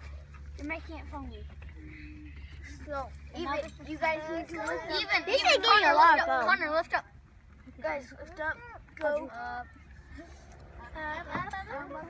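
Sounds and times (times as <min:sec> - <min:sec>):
faint children's voices: 0:00.0 - 0:12.0
steady low hum: 0:00.0 - 0:12.0.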